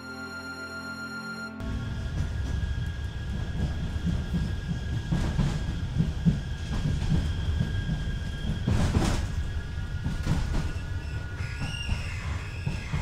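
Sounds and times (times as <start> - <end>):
tram low rumble: 0.0 - 13.0.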